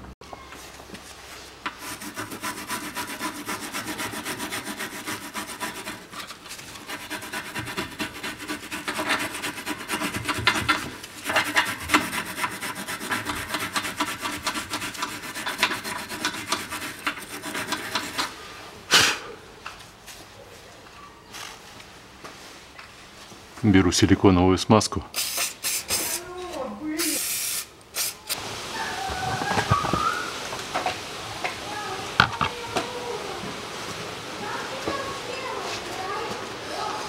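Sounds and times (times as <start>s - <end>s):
wire brush scraping metal: 1.4s - 18.4s.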